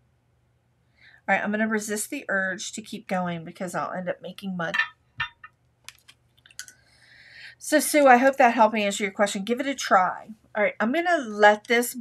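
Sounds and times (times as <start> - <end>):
person breathing: 0.9 - 1.3, 6.8 - 7.6.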